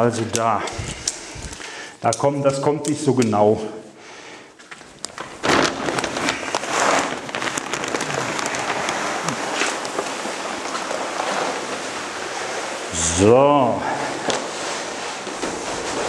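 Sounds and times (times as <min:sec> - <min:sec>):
plastic sack rustling: 0:04.6 - 0:16.0
granules pouring with rushing hiss: 0:05.6 - 0:16.0.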